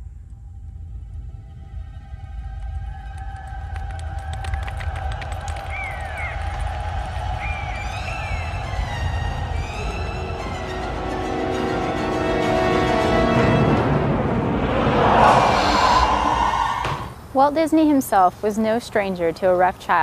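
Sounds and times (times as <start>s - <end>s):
deep rumble of stampede: 0.0s - 17.4s
tense orchestral music: 5.5s - 17.3s.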